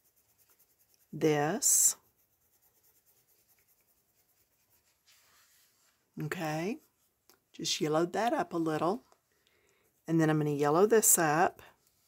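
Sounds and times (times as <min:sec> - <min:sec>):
pencil scratching on paper: 0:00.0 - 0:07.0.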